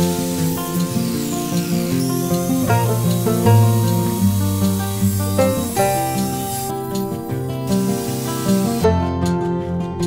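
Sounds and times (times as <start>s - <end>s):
table saw cutting wood: 0.0s - 8.8s
acoustic guitar music: 0.0s - 10.0s.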